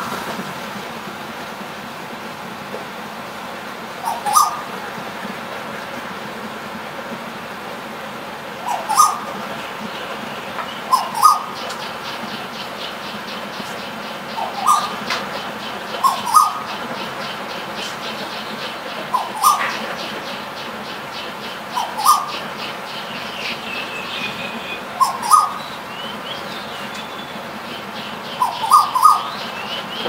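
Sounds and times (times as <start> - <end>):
steady background hiss: 0.0 - 30.0
bird double-note calls: 3.9 - 5.1, 8.4 - 30.0.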